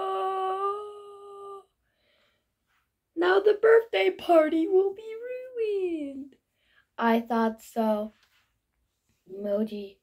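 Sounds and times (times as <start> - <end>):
girl wailing: 0.0 - 1.6.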